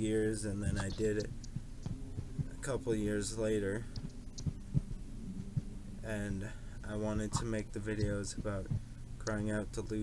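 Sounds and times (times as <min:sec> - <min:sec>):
low steady hum: 0:00.0 - 0:10.0
soft low thuds: 0:00.6 - 0:02.8, 0:04.0 - 0:05.8, 0:07.0 - 0:09.4.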